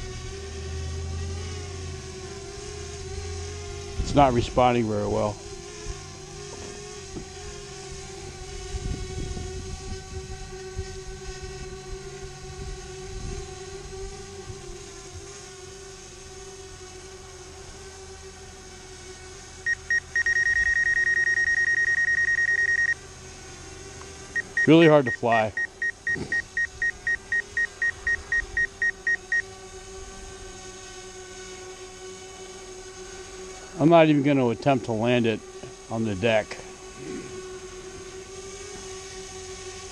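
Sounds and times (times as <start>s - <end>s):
drone propellers humming: 0.0s - 39.9s
rapid electronic warning beeps: 19.7s - 23.0s, 24.4s - 29.5s.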